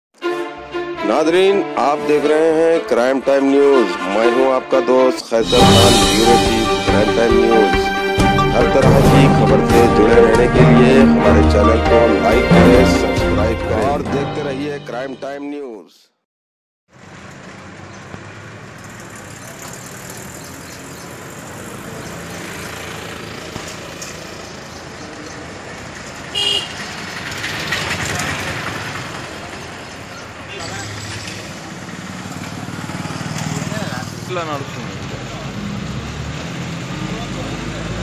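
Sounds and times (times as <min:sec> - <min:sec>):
traffic noise: 0:00.2 - 0:15.2, 0:16.9 - 0:38.0
indistinct voices: 0:01.1 - 0:15.4
vehicle horn toot: 0:26.3 - 0:26.8.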